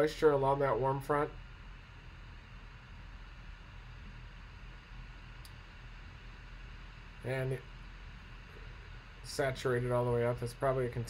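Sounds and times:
low hum: 0.0 - 11.0
room hiss: 0.0 - 11.0
faint click: 5.4 - 5.6.

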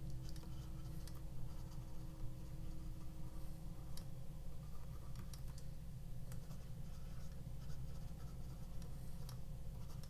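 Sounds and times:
steady low hum: 0.0 - 10.0
stylus scratching on tablet screen: 0.0 - 10.0.

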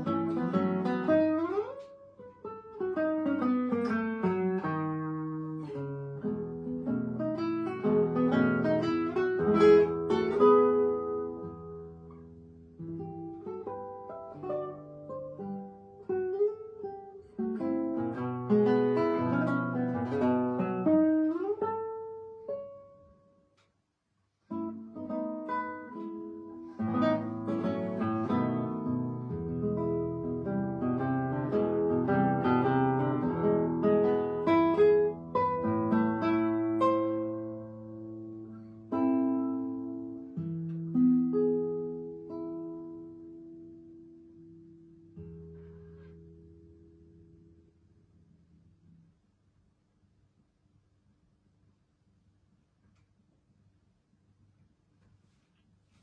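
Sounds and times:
fingerstyle classical guitar: 0.0 - 49.2.

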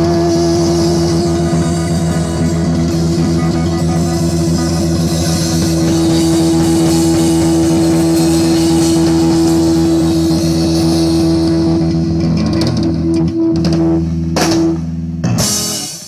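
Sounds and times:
cymbals washing: 0.0 - 16.0
rock band holding sustained chord: 0.0 - 16.0.

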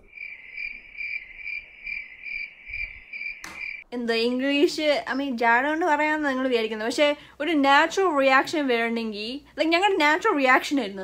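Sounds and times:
cricket chirping: 0.0 - 3.8
speech: 4.0 - 11.0.

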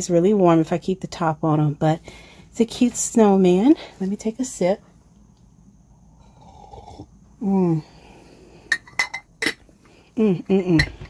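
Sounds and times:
person sipping from mug: 6.2 - 7.1.

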